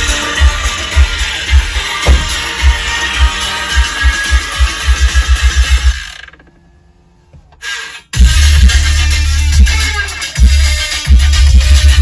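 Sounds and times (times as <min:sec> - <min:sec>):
heavy bass hits: 0:00.0 - 0:06.0, 0:08.2 - 0:09.7
electronic dance music on car stereo: 0:00.0 - 0:12.0.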